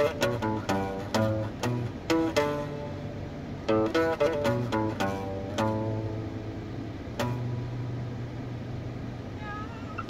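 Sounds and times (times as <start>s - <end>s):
acoustic guitar plucked: 0.0s - 10.0s
car cabin hum: 0.0s - 10.0s.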